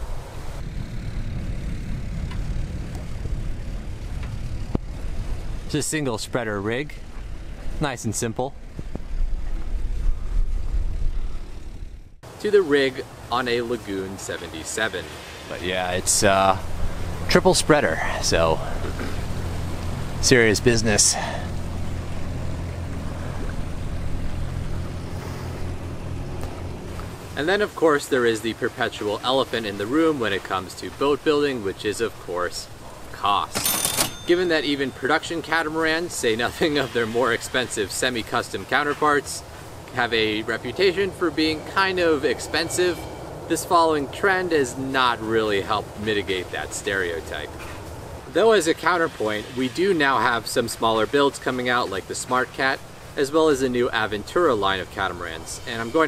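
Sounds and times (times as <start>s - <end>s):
wind buffeting microphone: 0.0s - 12.2s
low even hum: 0.0s - 14.5s, 15.8s - 37.3s.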